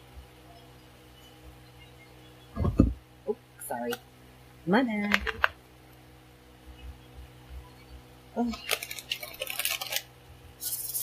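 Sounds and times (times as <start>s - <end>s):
deck of cards shuffling: 8.5s - 11.0s.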